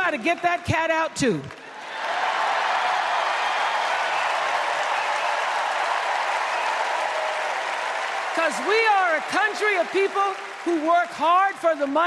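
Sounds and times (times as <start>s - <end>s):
large crowd applauding: 1.5s - 12.0s.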